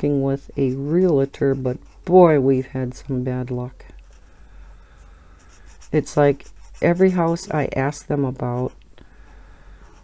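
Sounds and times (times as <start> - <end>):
marker scratching on paper: 0.5 - 2.3, 5.3 - 8.8.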